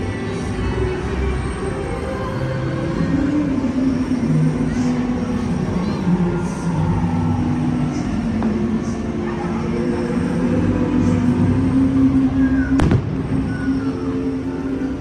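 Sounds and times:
murmur of crowd voices: 0:00.0 - 0:15.0
firework bang: 0:12.8 - 0:13.9.

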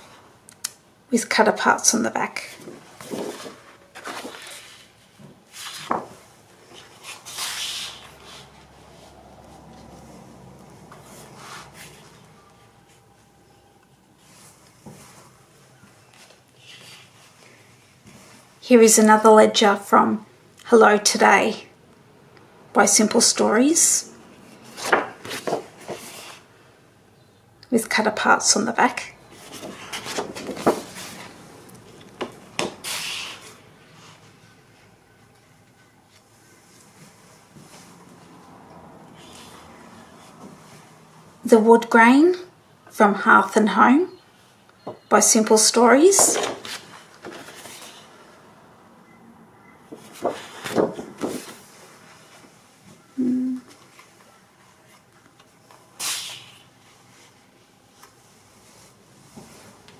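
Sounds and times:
paper sheets swishing and rustling: 0:02.5 - 0:10.0, 0:29.3 - 0:32.0, 0:46.1 - 0:48.3, 0:50.0 - 0:52.5.

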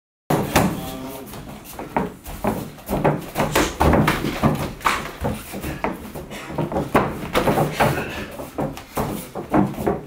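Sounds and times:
kicks thudding on padding: 0:01.8 - 0:10.0.

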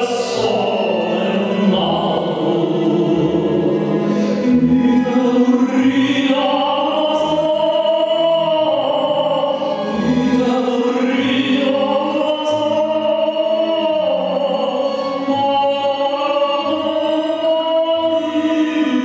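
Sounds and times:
double bass: 0:00.0 - 0:19.0
man singing with vibrato: 0:00.0 - 0:19.0.

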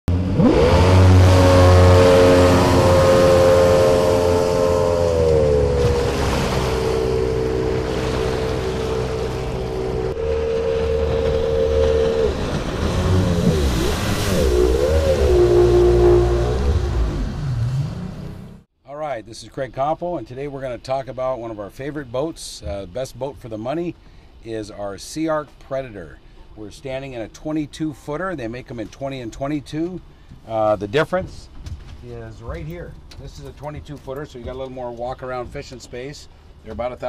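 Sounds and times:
jet boat motor running: 0:00.1 - 0:18.6.

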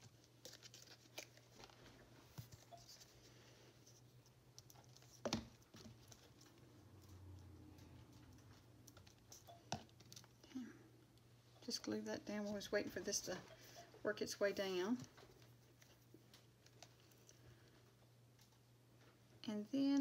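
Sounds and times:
handling paper and craft supplies: 0:00.0 - 0:03.2.

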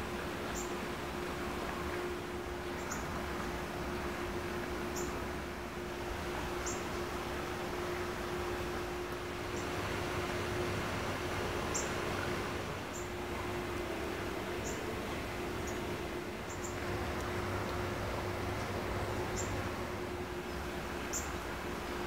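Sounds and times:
steady hiss and low hum: 0:00.0 - 0:22.0
small birds chirping: 0:14.6 - 0:14.9, 0:15.6 - 0:16.8, 0:21.0 - 0:21.4.

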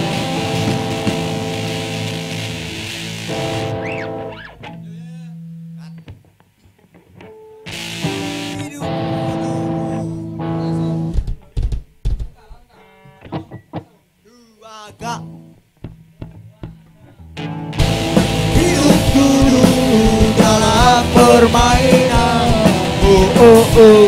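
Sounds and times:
rock band playing: 0:00.0 - 0:05.2, 0:07.2 - 0:11.4, 0:15.2 - 0:24.0
electric guitar plucking: 0:00.0 - 0:11.6, 0:12.7 - 0:14.0, 0:15.0 - 0:24.0.

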